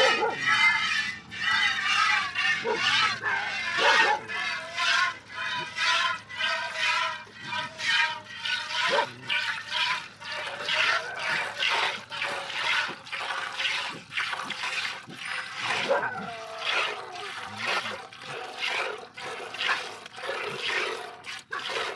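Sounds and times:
milk squirting into metal bucket: 0.0 - 21.9.

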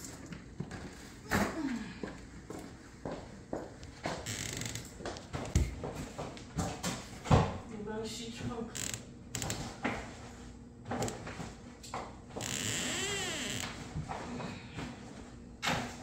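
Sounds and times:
footsteps: 0.0 - 7.6.

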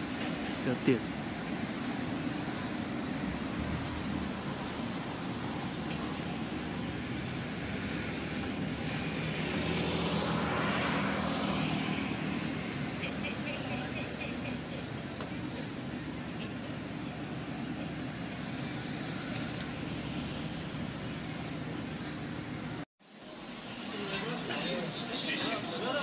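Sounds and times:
cars running: 0.0 - 26.0
vehicle passing: 7.9 - 14.7.

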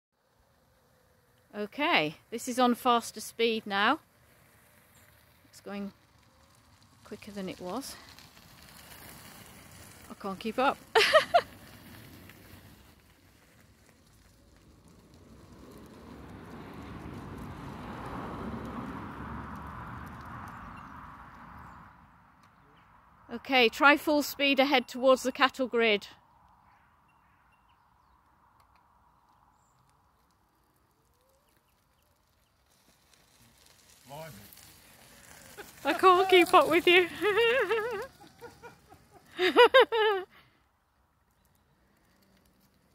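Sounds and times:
wheelchair rolling over gravel: 0.2 - 21.8, 29.2 - 40.3, 41.0 - 42.9.

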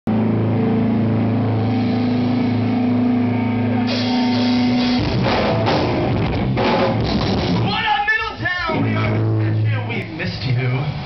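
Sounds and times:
distorted electric guitars droning: 0.1 - 11.0.

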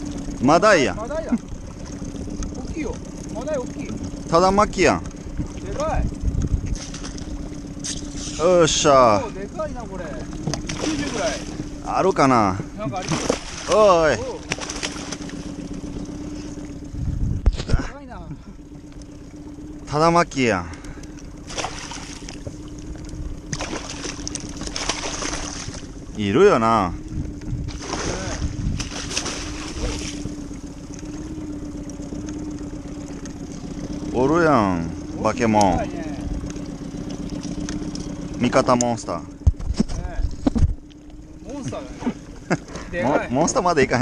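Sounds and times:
steady low hum: 0.0 - 44.0
wind rumble on microphone: 5.2 - 7.4, 16.8 - 18.0, 26.9 - 30.4, 39.3 - 40.8
fish splashing in water: 6.6 - 8.4, 10.4 - 11.8, 12.9 - 16.9, 20.9 - 26.1, 27.7 - 33.8.

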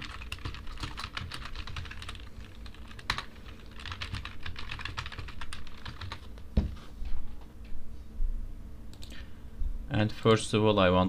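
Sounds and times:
typing on keyboard: 0.0 - 6.4.

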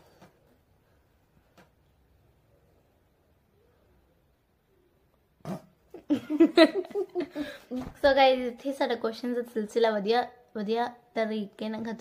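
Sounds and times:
girl laughing: 5.9 - 7.8.

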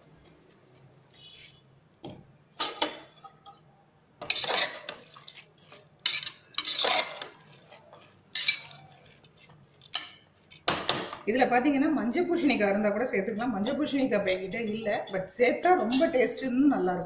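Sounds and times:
metal spoon scraping a pot: 2.6 - 10.3, 14.4 - 16.3.

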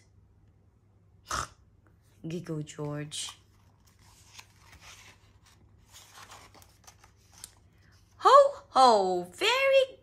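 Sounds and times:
book page turning: 3.0 - 8.2.

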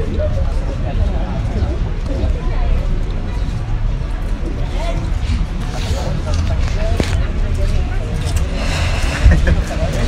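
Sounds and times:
indistinct voices: 0.0 - 10.0
low rumble of road traffic: 0.0 - 10.0.

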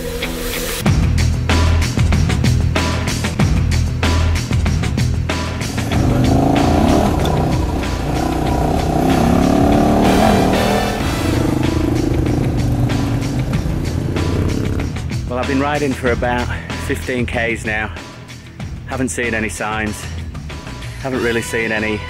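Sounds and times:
background music: 0.0 - 22.0
motorcycle engine revving: 5.3 - 15.3.

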